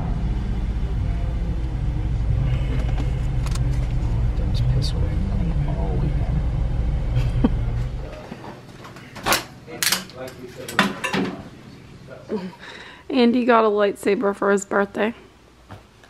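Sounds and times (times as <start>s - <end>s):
car engine idling: 0.0s - 8.2s.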